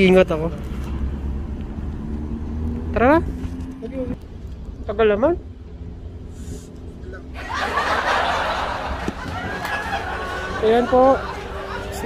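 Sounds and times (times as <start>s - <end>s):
breathy snickering laughter: 7.4s - 12.0s.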